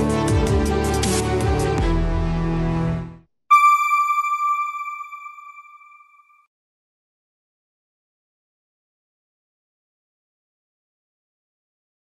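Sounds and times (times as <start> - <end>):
bright bell-like chime: 3.5 - 6.4.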